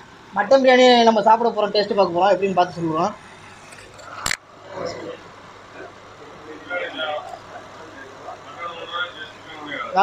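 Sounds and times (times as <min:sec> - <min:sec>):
murmur of people talking: 0:00.1 - 0:10.0.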